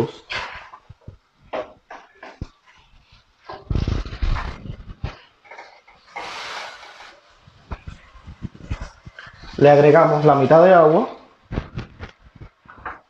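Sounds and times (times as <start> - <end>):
spatula scraping metal pot: 5.4 - 7.2.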